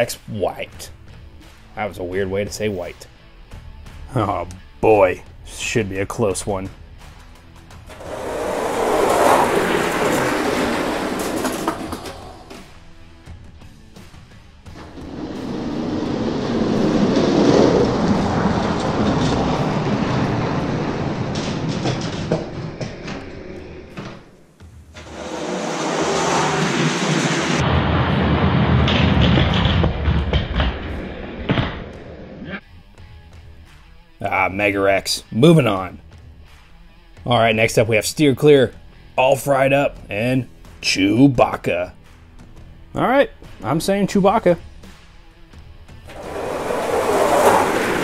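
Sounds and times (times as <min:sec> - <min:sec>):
background music: 0:00.0 - 0:21.4, 0:30.9 - 0:48.0
toy trucks rolling on plastic track: 0:07.9 - 0:12.6, 0:46.1 - 0:48.0.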